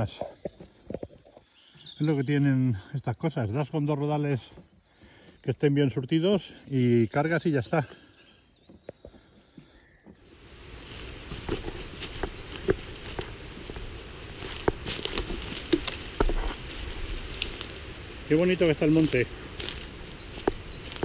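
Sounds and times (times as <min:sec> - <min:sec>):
footsteps on forest floor: 0:07.2 - 0:21.0.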